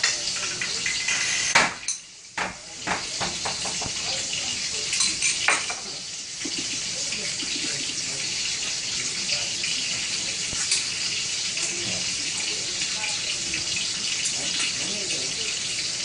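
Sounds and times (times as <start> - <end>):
tap water running into sink: 0.0 - 16.0.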